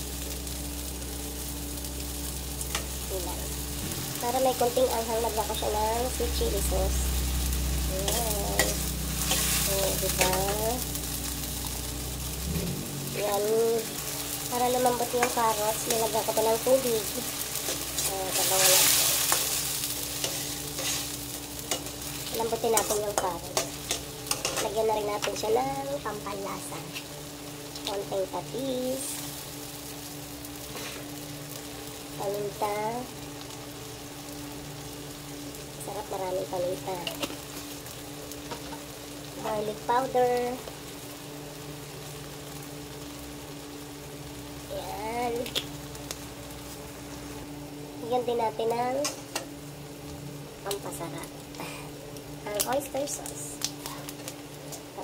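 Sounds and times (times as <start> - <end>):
low hum: 0.0 - 52.6
sauce sizzling in a wok: 0.0 - 55.0.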